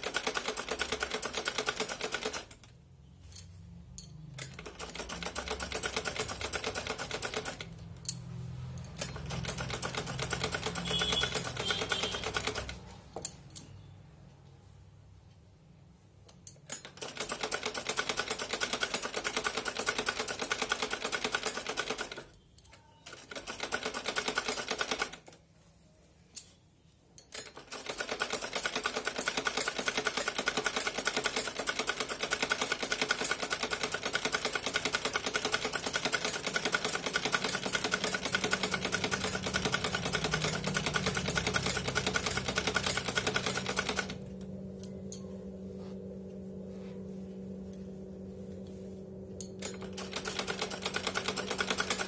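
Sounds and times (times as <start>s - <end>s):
sewing machine running: 0.0s - 2.7s, 4.4s - 7.9s, 8.8s - 12.9s, 16.8s - 22.3s, 23.0s - 25.3s, 27.4s - 44.6s, 49.6s - 52.0s.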